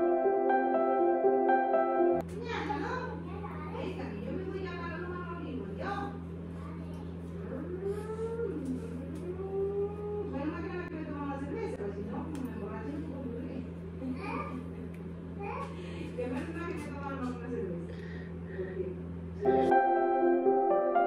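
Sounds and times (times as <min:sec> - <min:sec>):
background music: 0:00.0 - 0:02.2, 0:19.5 - 0:21.0
steady low hum: 0:00.0 - 0:21.0.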